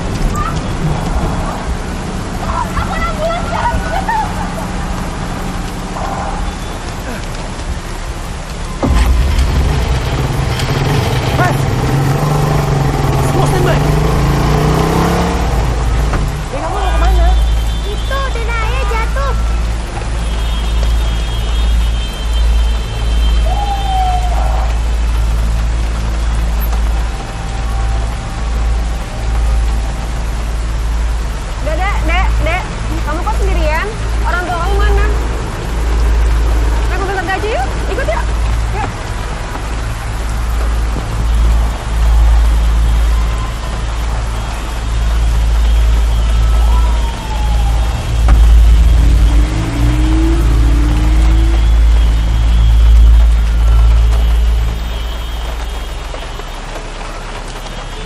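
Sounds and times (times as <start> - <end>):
deep continuous rumble: 0.0 - 57.6
rain hissing: 0.0 - 58.0
voices shouting: 22.8 - 25.1.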